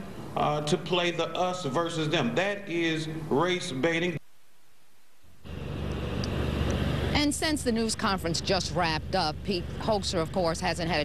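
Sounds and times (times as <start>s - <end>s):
traffic rumble with hiss: 0.0s - 4.2s, 5.4s - 11.0s.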